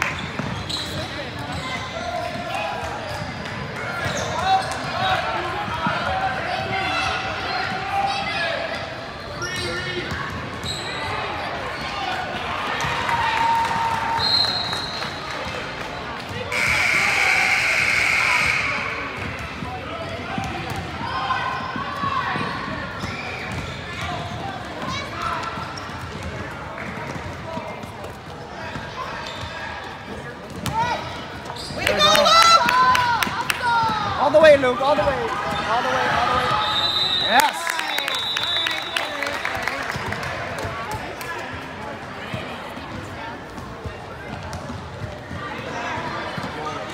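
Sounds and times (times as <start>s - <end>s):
spectators' voices: 0.0s - 46.9s
basketball bouncing on gym floor: 30.4s - 30.9s.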